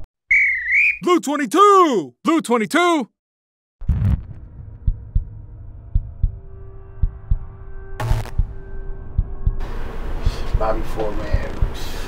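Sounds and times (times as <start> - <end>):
heartbeat thumps: 3.8 - 6.4, 7.0 - 11.8
low drone: 3.9 - 11.1.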